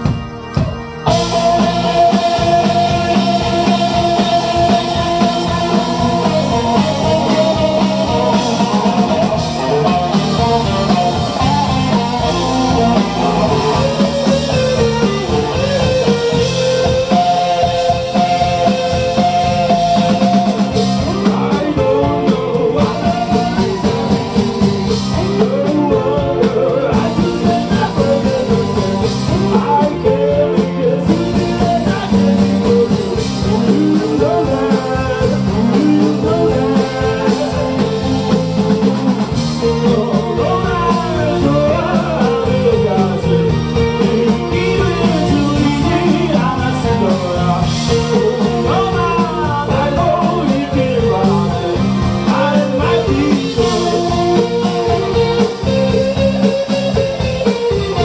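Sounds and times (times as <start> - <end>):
bass guitar: 0.0 - 58.0
drum kit: 0.0 - 58.0
electric guitars: 0.0 - 58.0
person singing: 1.0 - 58.0.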